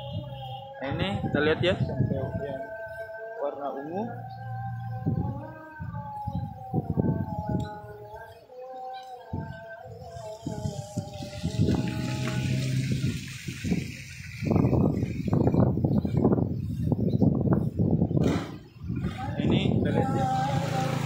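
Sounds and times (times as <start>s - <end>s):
wind buffeting microphone: 0.0s - 3.2s, 4.2s - 8.3s, 9.3s - 21.0s
rough water rushing: 10.3s - 15.8s, 20.0s - 21.0s.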